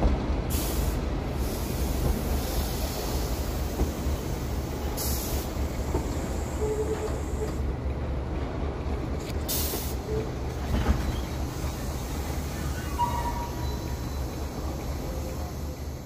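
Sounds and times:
air hisses: 0:00.5 - 0:06.6.

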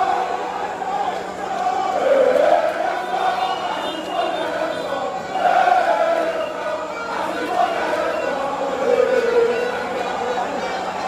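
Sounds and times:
crowd singing a chant: 0:00.0 - 0:11.0.

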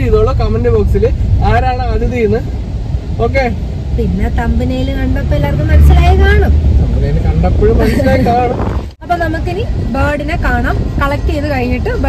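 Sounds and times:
road and engine rumble: 0:00.0 - 0:12.0
people talking: 0:03.2 - 0:12.0.

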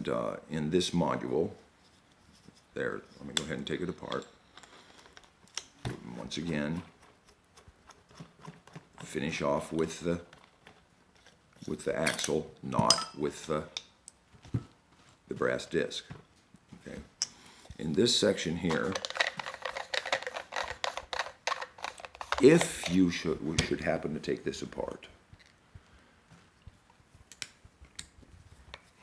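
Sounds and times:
coffee grinder parts clicking: 0:18.6 - 0:23.0.

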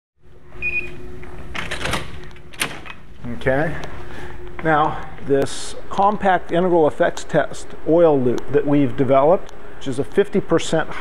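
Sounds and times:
room hum: 0:00.2 - 0:11.0
keys and latch rattling: 0:01.5 - 0:03.0.

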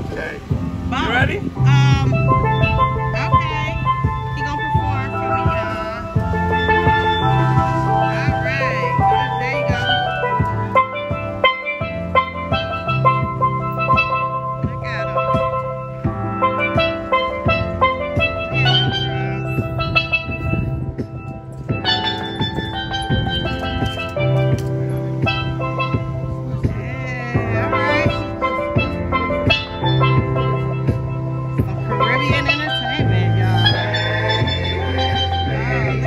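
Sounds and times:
low bass line: 0:00.0 - 0:36.0
steel pan melody: 0:00.0 - 0:36.0.

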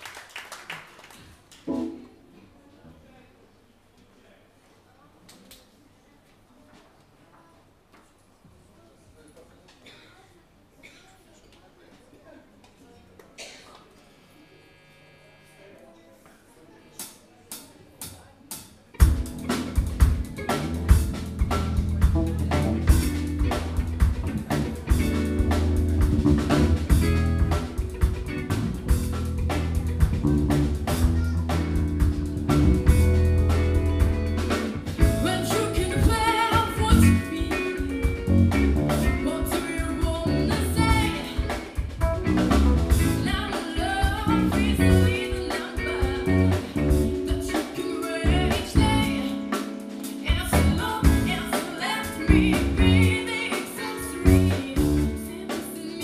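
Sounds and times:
live band playing: 0:19.0 - 0:56.0
woman singing: 0:35.0 - 0:38.2, 0:39.0 - 0:42.0, 0:43.0 - 0:56.0.

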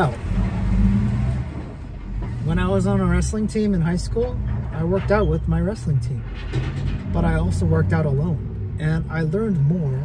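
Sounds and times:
car road and engine rumble: 0:00.0 - 0:10.0
man's voice: 0:07.1 - 0:10.0.

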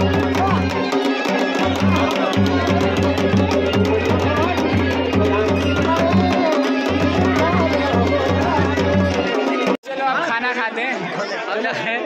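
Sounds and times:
crowd of people talking: 0:00.0 - 0:12.0.

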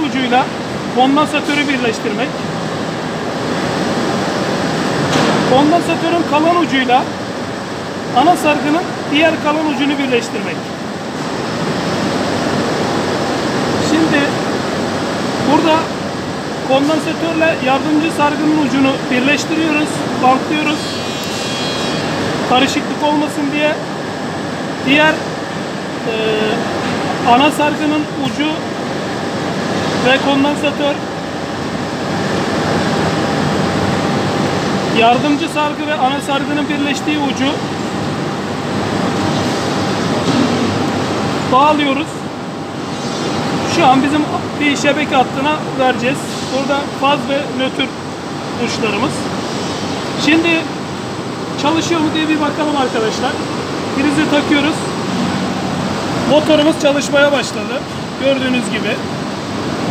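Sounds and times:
steady mechanical noise: 0:00.0 - 0:59.9.

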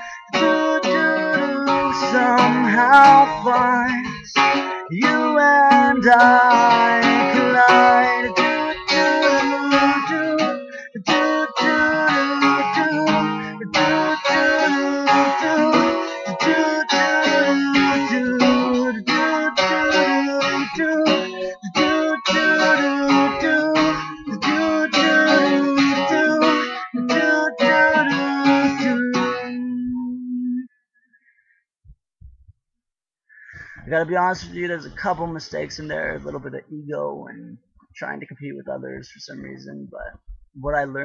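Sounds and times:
acoustic guitar strumming: 0:00.0 - 0:30.6.

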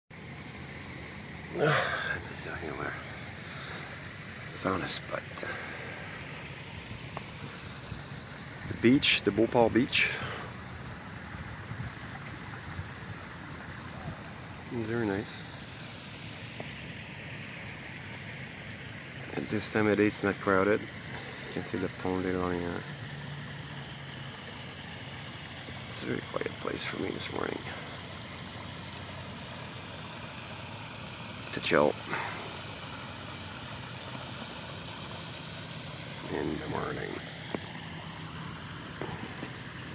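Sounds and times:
outdoor low rumble with hiss: 0:00.1 - 0:39.9.

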